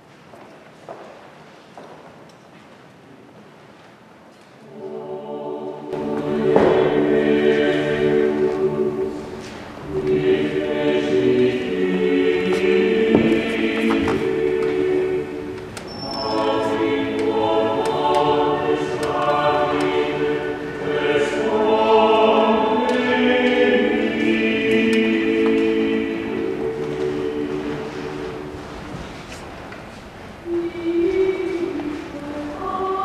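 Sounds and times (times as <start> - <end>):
church choir singing: 4.6 - 33.0.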